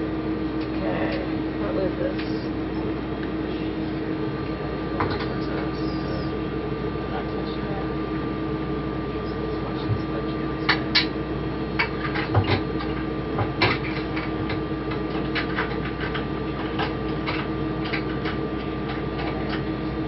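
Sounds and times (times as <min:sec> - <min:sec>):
cabin ventilation hum: 0:00.0 - 0:20.0.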